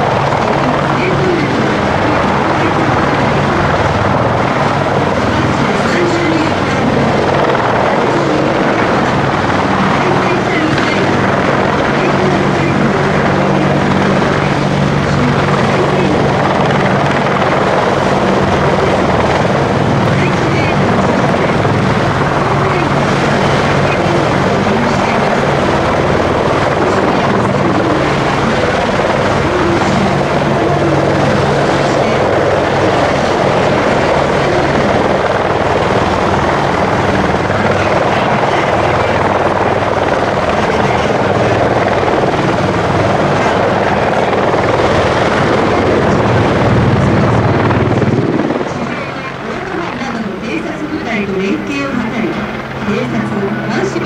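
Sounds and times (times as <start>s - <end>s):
helicopter flying overhead: 0.0s - 54.0s.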